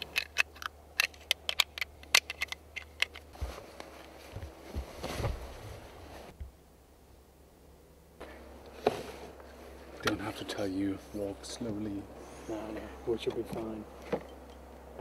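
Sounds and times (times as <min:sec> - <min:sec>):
rucksack rustling and scraping: 0:00.0 - 0:06.4, 0:08.2 - 0:14.4.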